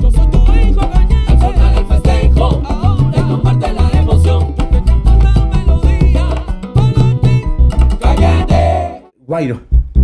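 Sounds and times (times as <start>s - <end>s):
plucked electric upright bass: 0.0s - 9.0s
band with percussion and melody: 0.0s - 9.1s.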